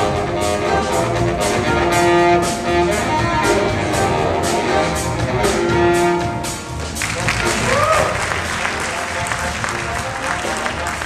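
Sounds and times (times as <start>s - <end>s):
jazz band playing: 0.0s - 11.0s
audience applauding: 6.9s - 11.0s.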